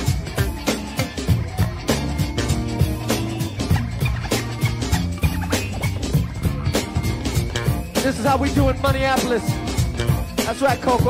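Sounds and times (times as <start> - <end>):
bass line: 0.0 - 11.0
steady drum beat: 0.0 - 11.0.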